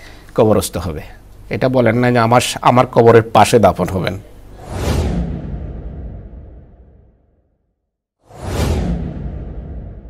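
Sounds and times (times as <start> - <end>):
whoosh sound effect: 4.6 - 7.2, 8.3 - 10.0.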